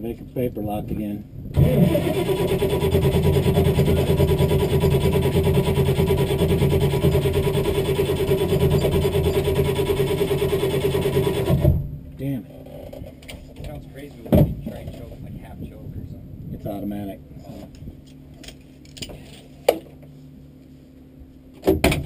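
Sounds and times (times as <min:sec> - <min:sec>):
car engine idling: 0:01.6 - 0:11.7.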